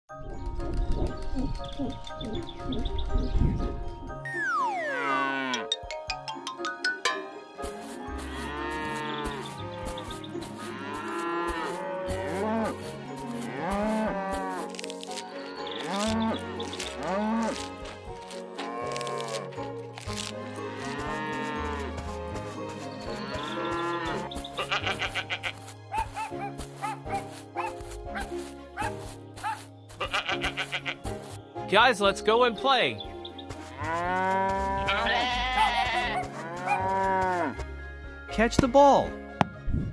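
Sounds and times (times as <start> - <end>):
children's backing music: 0.1 - 39.6
cartoon cows mooing: 4.7 - 5.7, 10.7 - 12.8, 15.7 - 17.7, 18.6 - 19.7, 33.7 - 37.5.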